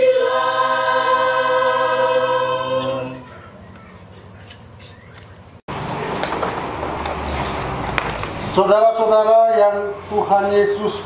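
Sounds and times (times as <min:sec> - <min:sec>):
night insects chirring: 0:00.0 - 0:05.6.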